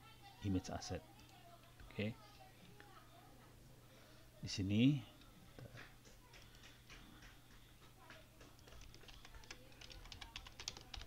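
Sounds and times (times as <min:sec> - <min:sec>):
keyboard typing: 0:08.1 - 0:11.0.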